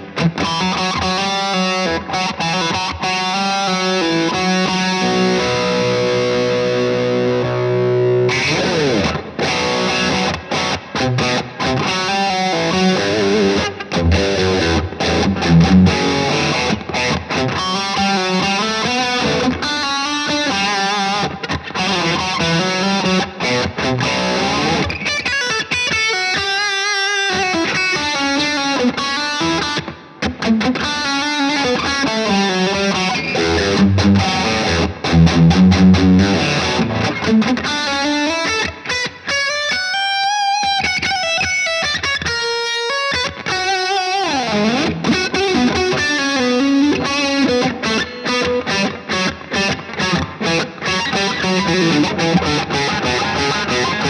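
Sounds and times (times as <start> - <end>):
distorted electric guitar riffs: 0.0 - 54.0.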